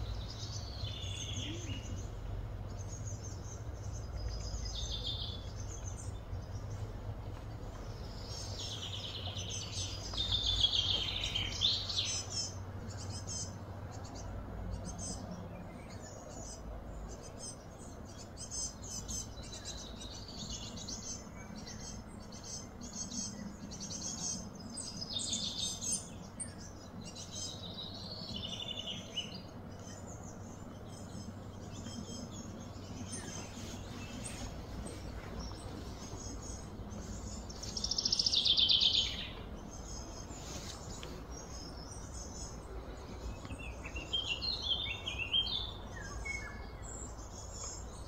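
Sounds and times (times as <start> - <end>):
low background hum: 0.0 - 48.0
small birds chirping: 0.0 - 48.0.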